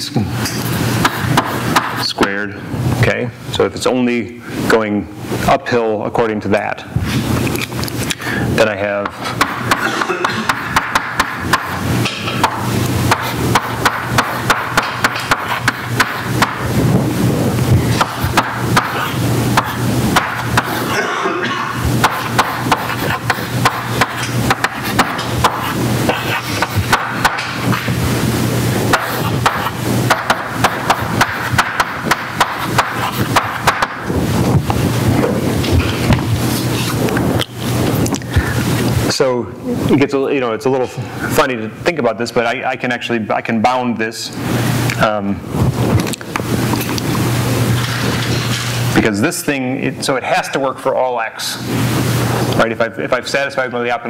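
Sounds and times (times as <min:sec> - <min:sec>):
steady low hum: 0:00.0 - 0:54.0
chalk tapping and scratching: 0:01.0 - 0:02.0, 0:09.0 - 0:16.7, 0:17.9 - 0:20.9, 0:22.0 - 0:27.9, 0:28.9 - 0:34.0.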